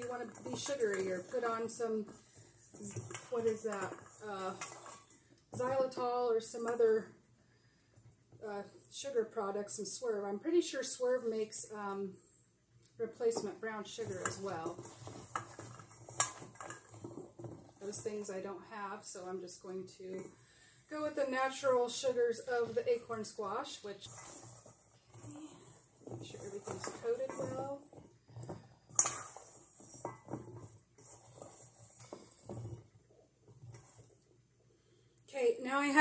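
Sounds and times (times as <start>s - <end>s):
squash pieces clinking in metal bowl: 14.0s - 17.9s, 28.9s - 30.4s.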